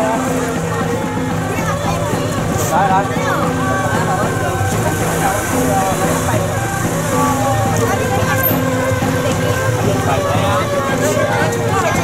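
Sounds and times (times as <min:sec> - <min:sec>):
people talking and calling: 0:00.0 - 0:12.0
vehicle engine humming: 0:00.0 - 0:12.0.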